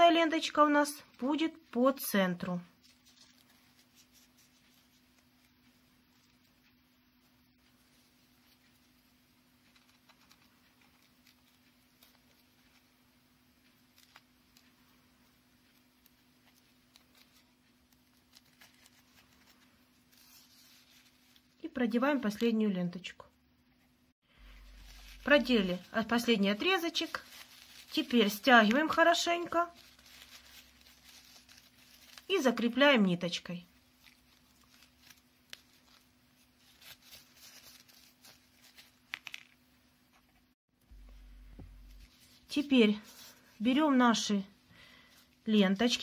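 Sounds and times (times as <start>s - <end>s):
ribbon rustling: 0.0s - 22.5s, 24.3s - 46.0s
low steady hum: 0.0s - 46.0s.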